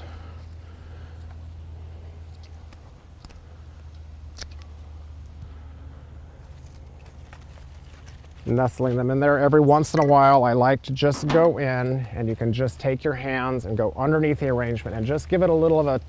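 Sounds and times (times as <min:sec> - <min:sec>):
steady low hum: 0:00.0 - 0:16.0
soft clicks of flower stems: 0:02.2 - 0:05.6.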